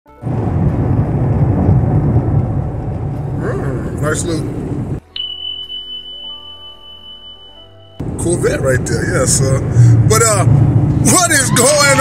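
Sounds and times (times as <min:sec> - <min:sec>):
road noise: 0:00.1 - 0:05.2, 0:07.7 - 0:12.0
car engine: 0:00.2 - 0:05.0, 0:08.0 - 0:12.0
music playing: 0:05.0 - 0:12.0.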